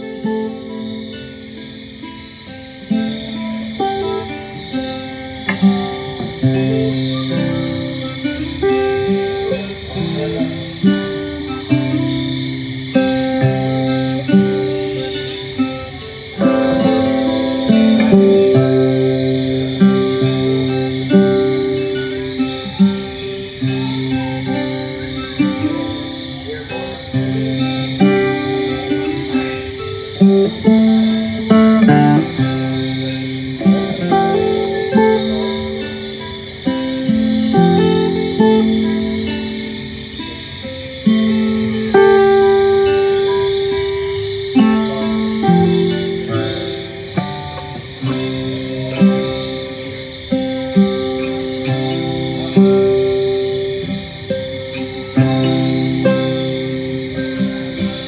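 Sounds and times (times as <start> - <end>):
acoustic guitar lullaby: 0.0 - 58.0.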